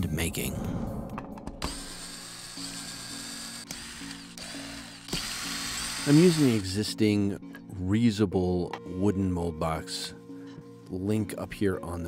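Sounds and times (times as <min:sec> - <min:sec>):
background music: 0:00.0 - 0:12.0
cordless drill driving screws: 0:01.7 - 0:06.7.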